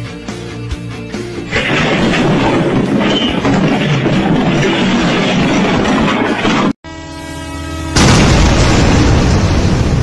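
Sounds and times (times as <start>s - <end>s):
loud noisy sound: 1.5s - 10.0s
train horn blast: 6.9s - 8.1s.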